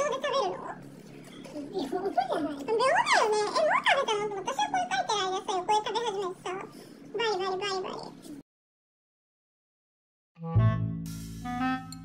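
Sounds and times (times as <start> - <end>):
woman's high-pitched wordless voice: 0.0 - 0.8, 1.4 - 8.4.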